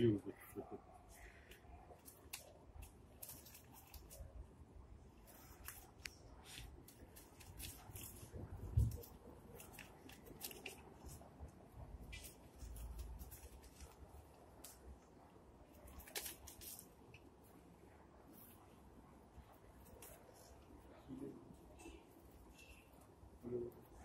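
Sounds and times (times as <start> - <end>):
paper rustling: 1.1 - 4.3, 5.2 - 11.3, 12.0 - 14.9, 15.7 - 17.0.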